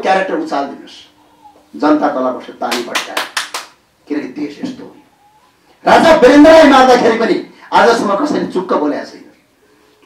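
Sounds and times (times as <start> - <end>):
man speaking into a microphone: 0.0 - 3.4, 4.0 - 5.1, 5.8 - 9.4.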